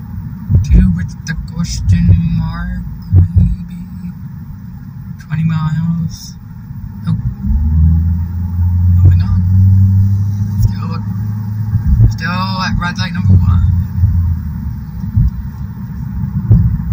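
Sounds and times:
car rumble inside cabin: 0.0s - 16.9s
deep steady hum: 0.0s - 16.9s.

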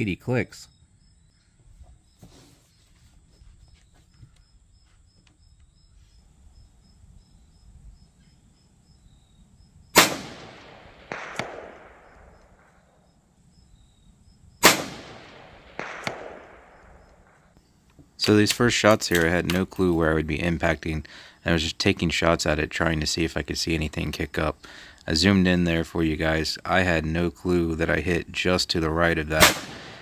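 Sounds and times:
quieter sharp report: 9.9s - 12.9s, 14.6s - 17.6s, 29.3s - 30.0s
rifle shots echoing: 10.0s - 12.8s, 14.6s - 17.4s, 29.3s - 30.0s.

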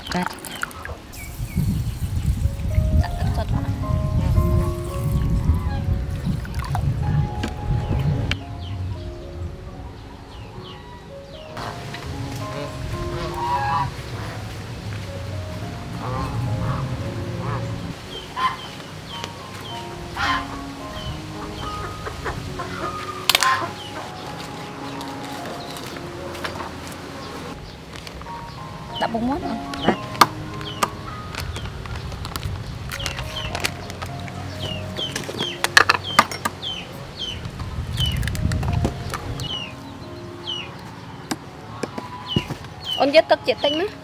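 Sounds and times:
music with held notes: 0.0s - 44.0s
fowl honking: 10.6s - 14.6s, 15.8s - 25.0s.

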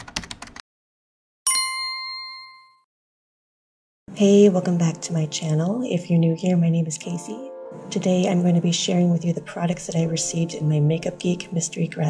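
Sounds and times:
bell-like ding: 1.5s - 2.8s.

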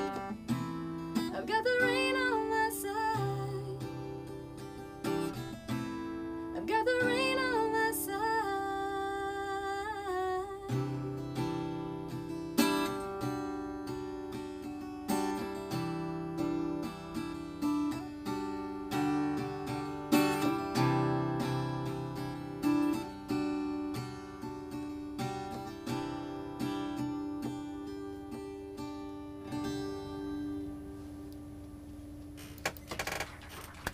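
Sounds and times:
acoustic guitar chords: 0.0s - 33.9s.

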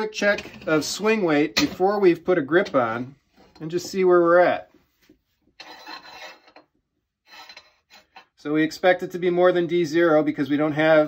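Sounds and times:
golf club scraping on scale: 5.5s - 8.4s.

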